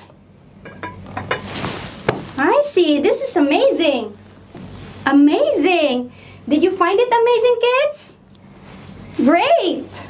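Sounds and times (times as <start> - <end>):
glass clinks and knocks: 0.6 - 1.5.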